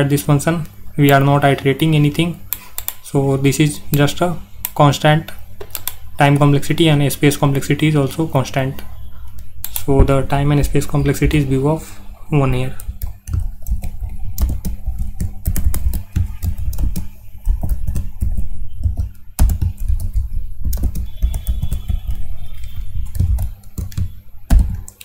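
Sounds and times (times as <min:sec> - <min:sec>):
typing on computer keyboard: 0:02.5 - 0:03.0, 0:04.0 - 0:06.1, 0:12.7 - 0:25.0.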